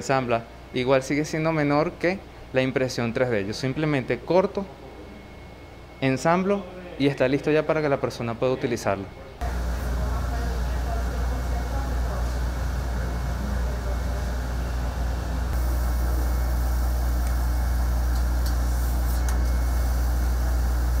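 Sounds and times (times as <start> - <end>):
low machine hum: 9.0 - 21.0
laser cutter running: 9.4 - 21.0.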